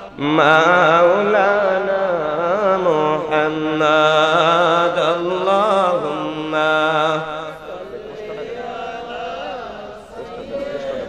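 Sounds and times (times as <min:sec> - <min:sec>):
man chanting through amplifier: 0:00.0 - 0:11.0.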